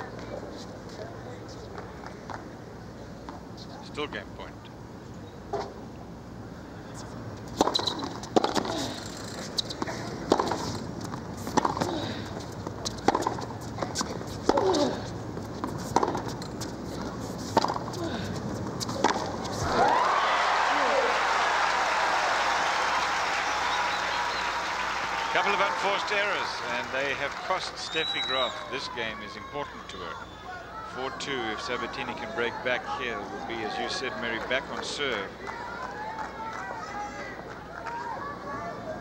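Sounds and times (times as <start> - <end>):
tennis ball hit by racquets: 12.8 - 20.0
crowd applause: 19.5 - 29.0.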